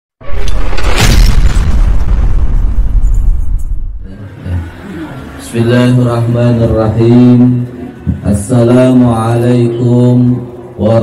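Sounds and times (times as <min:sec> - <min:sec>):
deep boom with rushing burst: 0:00.2 - 0:04.0.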